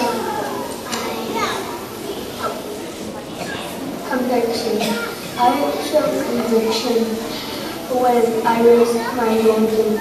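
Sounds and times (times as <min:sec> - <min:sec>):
children talking: 0:00.0 - 0:10.0.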